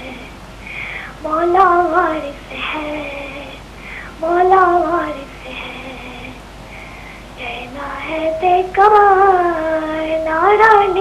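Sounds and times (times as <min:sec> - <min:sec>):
person singing over phone line: 0:07.4 - 0:11.0.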